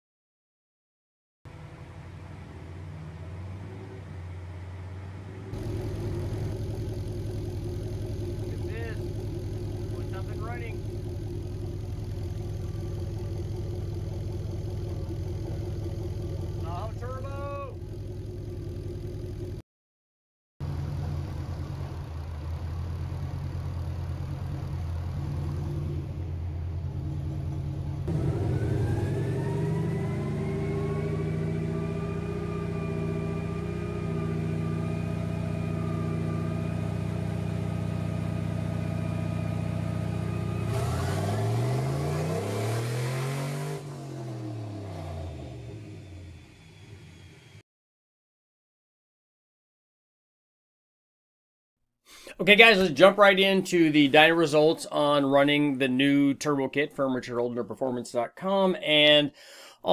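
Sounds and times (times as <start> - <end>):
car engine running: 1.5 - 19.6, 20.6 - 47.6
high turbo whine: 1.5 - 19.6, 20.6 - 47.6.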